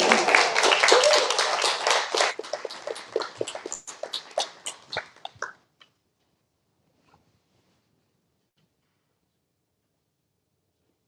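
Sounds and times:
audience clapping: 0:00.0 - 0:05.5.

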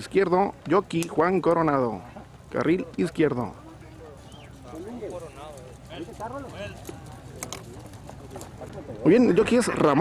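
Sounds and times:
faint people talking: 0:00.0 - 0:10.0
horse hooves on dirt: 0:02.2 - 0:09.0.

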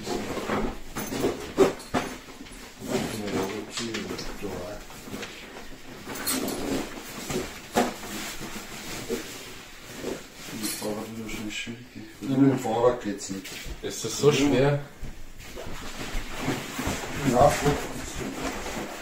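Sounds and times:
backpack straps handled: 0:06.0 - 0:09.3.

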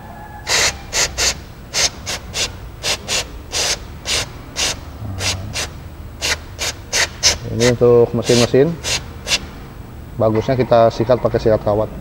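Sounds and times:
aerosol spray squirts: 0:00.5 - 0:09.5.

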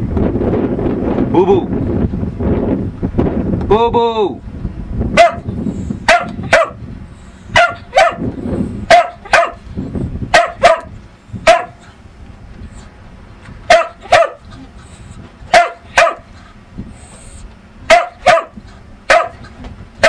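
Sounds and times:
dog barking: 0:05.2 - 0:05.5, 0:06.1 - 0:06.8, 0:07.5 - 0:08.3, 0:08.9 - 0:09.6, 0:10.3 - 0:11.8, 0:13.7 - 0:14.4, 0:15.5 - 0:16.3, 0:17.9 - 0:19.4.

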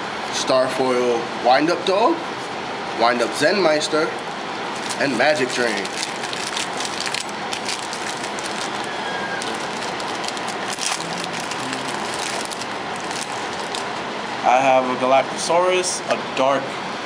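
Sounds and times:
cards and wrappers crinkling: 0:04.8 - 0:14.0.

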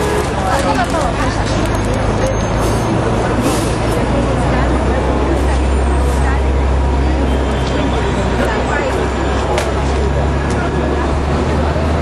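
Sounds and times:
bus engine rumbling: 0:00.0 - 0:12.0
people talking: 0:00.0 - 0:12.0
street noise: 0:00.0 - 0:12.0.

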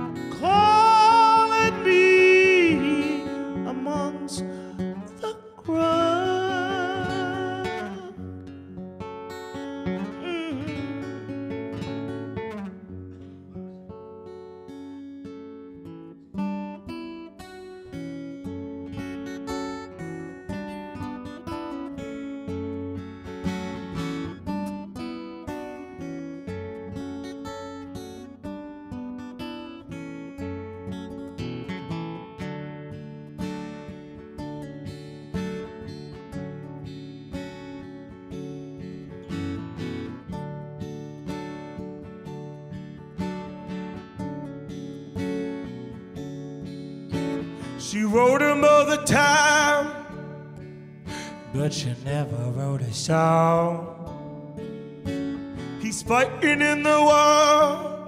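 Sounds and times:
acoustic guitars playing chords: 0:00.0 - 0:58.0
strummed guitar rhythm: 0:00.0 - 0:58.0.

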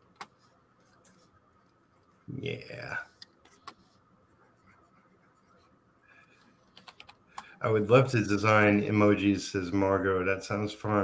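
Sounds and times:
faint scratching of drawing: 0:00.2 - 0:09.8.

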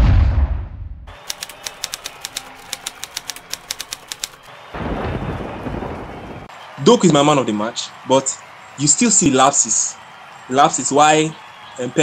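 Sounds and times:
typewriter key clicks: 0:01.3 - 0:04.4.

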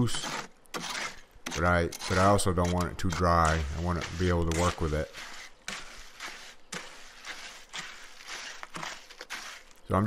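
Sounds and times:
hoe scraping wet concrete: 0:00.0 - 0:10.0.

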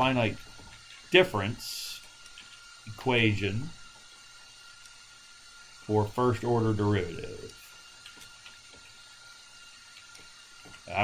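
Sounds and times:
background hiss: 0:00.0 - 0:09.3.

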